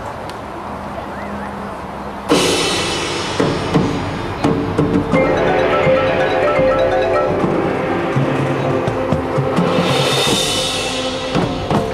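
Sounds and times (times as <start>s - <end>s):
drum and percussion strikes: 2.3s - 11.9s
marching band chord: 5.1s - 11.9s.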